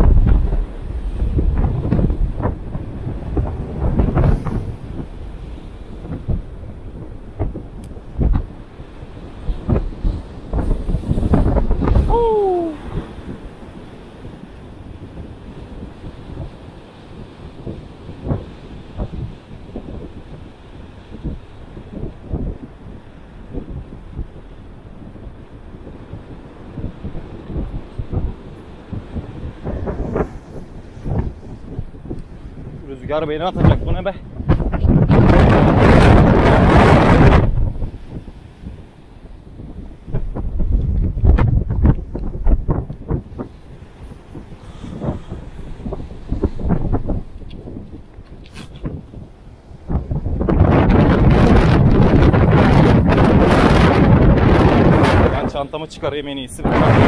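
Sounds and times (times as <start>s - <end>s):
surf breaking on rocks: 0.0s - 24.5s, 25.1s - 57.0s
wind buffeting microphone: 0.0s - 57.0s.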